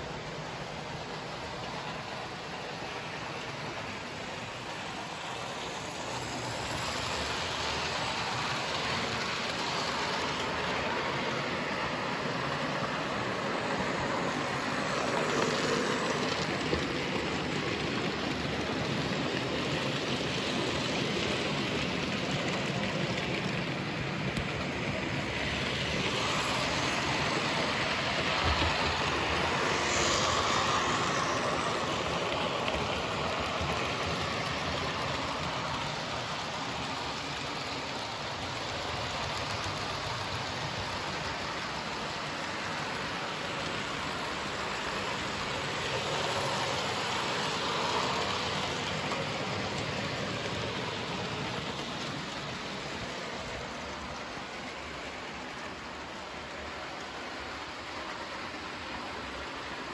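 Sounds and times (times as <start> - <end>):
model train motors whirring: 0.0 - 59.9
wheels rattling on track: 0.0 - 59.9.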